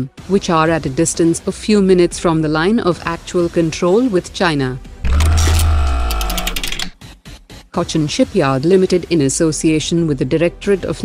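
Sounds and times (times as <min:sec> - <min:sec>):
fast ticking: 0:05.0 - 0:07.0.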